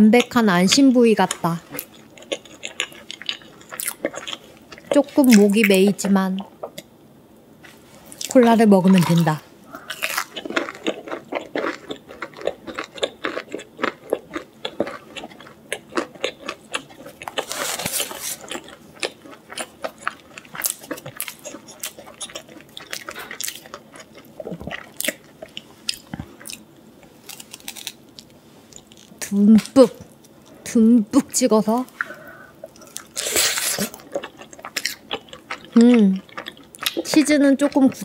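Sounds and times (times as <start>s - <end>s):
crunchy chewing: 1.3s - 5.5s, 7.6s - 30.6s, 31.8s - 38.0s.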